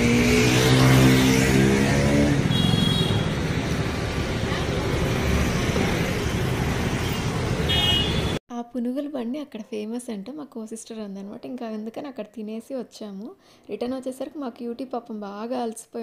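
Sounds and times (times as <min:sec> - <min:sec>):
vehicle engine revving: 0:00.0 - 0:07.6
traffic din: 0:00.0 - 0:08.4
high-pitched horn toots: 0:00.5 - 0:03.4.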